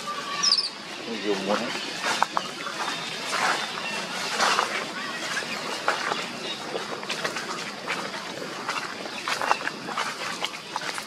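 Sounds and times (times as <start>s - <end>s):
monkeys squeaking and calling: 0.0s - 7.8s
rustling in dry leaves: 0.0s - 11.0s.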